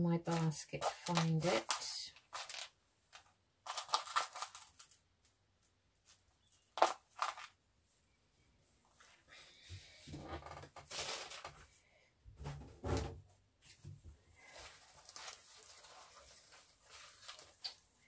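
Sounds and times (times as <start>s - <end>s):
rustling and clattering of craft supplies: 0.0s - 7.6s, 8.8s - 18.0s.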